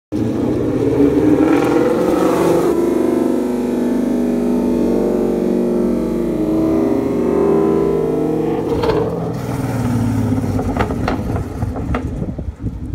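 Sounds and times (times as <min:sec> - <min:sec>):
car engine driving past: 0:00.2 - 0:12.1.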